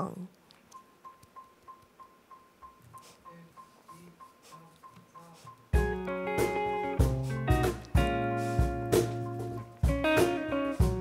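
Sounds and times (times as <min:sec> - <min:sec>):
electronic metronome beep: 0:00.7 - 0:06.2.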